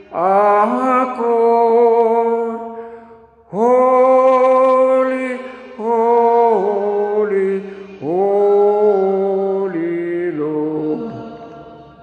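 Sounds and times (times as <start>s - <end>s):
man singing a slow hymn: 0.0s - 12.0s.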